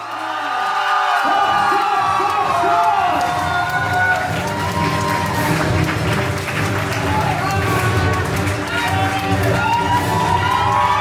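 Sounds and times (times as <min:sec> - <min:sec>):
crowd clapping and cheering: 0:00.0 - 0:11.0
music playing: 0:01.2 - 0:11.0.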